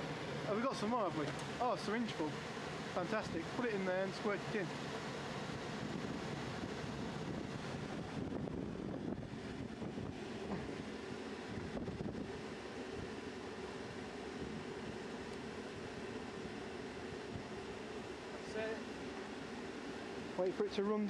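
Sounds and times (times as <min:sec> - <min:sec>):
wind buffeting microphone: 0:05.2 - 0:17.8.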